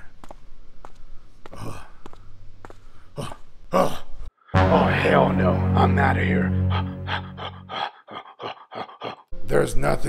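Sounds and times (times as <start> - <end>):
music: 4.5 - 7.9, 9.3 - 10.0
man panting: 6.6 - 9.3.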